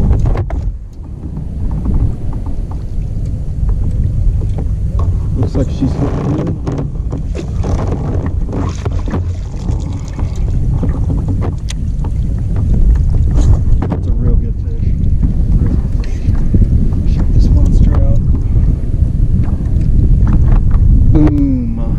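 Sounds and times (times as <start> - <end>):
wind buffeting microphone: 0.0 - 21.9
water splashing: 1.1 - 18.2
sharp knocks on kayak: 6.2 - 14.1.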